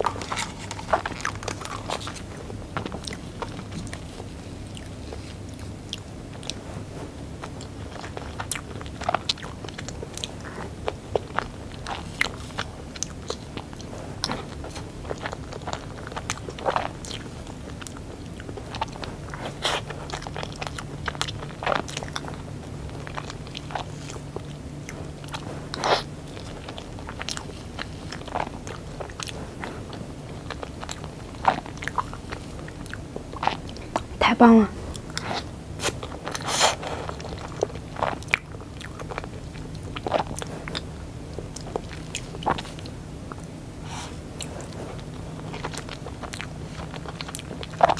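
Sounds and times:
chewing and mouth sounds: 0:00.0 - 0:47.9.

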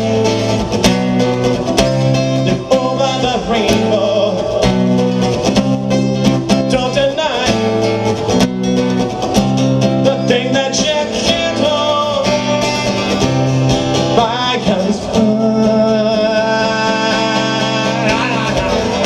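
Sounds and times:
acoustic guitar strummed: 0:00.0 - 0:19.0
man singing: 0:02.3 - 0:05.1, 0:06.5 - 0:07.9, 0:09.9 - 0:13.2, 0:14.0 - 0:19.0.

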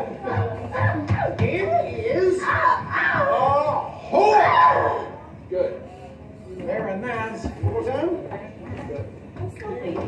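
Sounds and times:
human voices wailing: 0:00.9 - 0:05.2.

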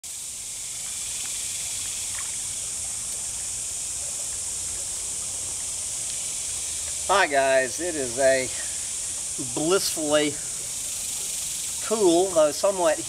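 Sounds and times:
creek water running: 0:00.0 - 0:13.0.

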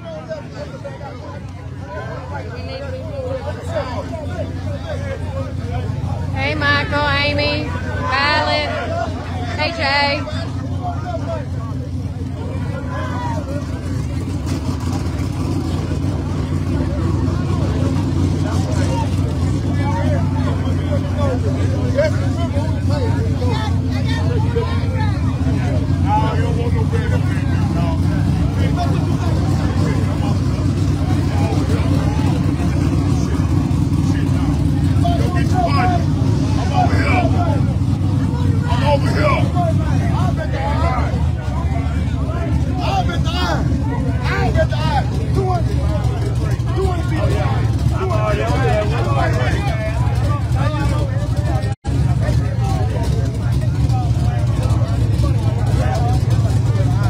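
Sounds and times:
car engines rumbling: 0:00.0 - 0:57.0
crowd chatter: 0:00.0 - 0:57.0.

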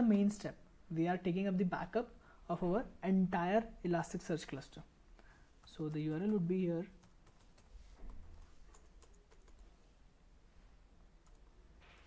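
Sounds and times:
keyboard typing: 0:05.6 - 0:09.8, 0:11.2 - 0:12.0.

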